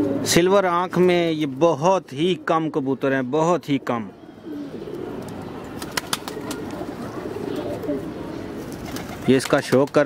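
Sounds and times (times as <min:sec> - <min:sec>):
pigeons cooing: 0:00.0 - 0:00.3, 0:03.6 - 0:09.5.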